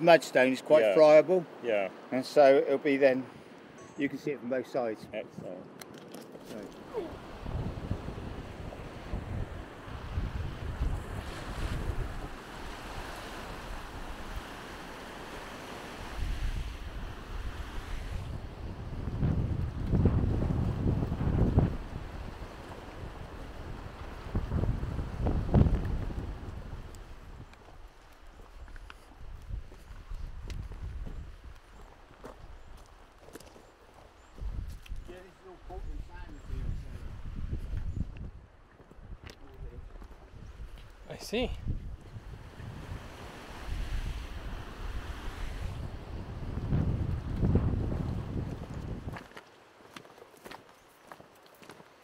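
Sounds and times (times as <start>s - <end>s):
wind buffeting microphone: 6.8s - 49.4s
footsteps on loose stones: 27.6s - 35.0s, 48.4s - 52.0s.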